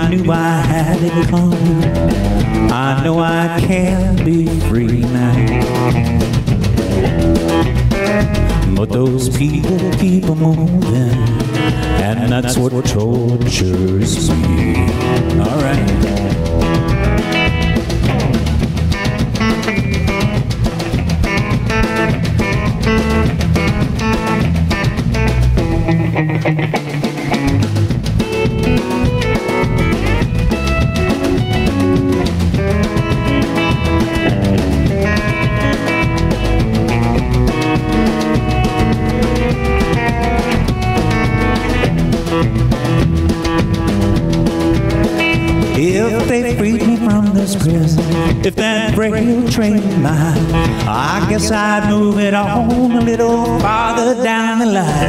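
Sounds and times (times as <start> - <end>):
drum kit steady beat: 0.0 - 55.0
electric bass: 0.0 - 55.0
electric guitar lead solo: 14.4 - 18.4, 19.0 - 46.2.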